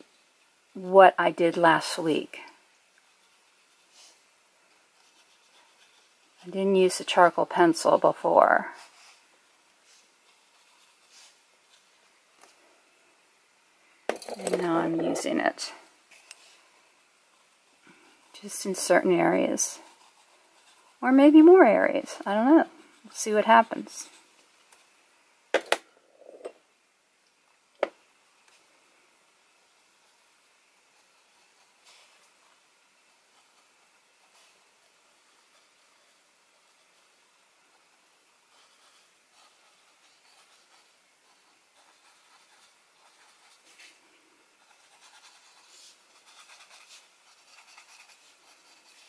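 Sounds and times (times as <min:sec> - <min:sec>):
brush scratching charcoal on paper: 0:01.6 - 0:12.6, 0:14.5 - 0:25.0, 0:29.5 - 0:49.0.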